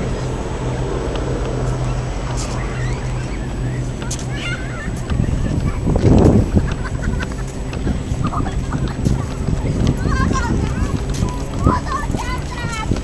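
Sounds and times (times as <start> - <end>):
low rush: 0.0 - 13.0
steady low hum: 0.0 - 13.0.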